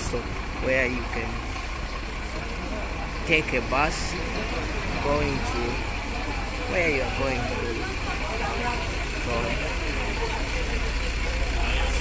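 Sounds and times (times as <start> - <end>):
bus engine idling: 0.0 - 12.0
people's voices: 0.0 - 12.0.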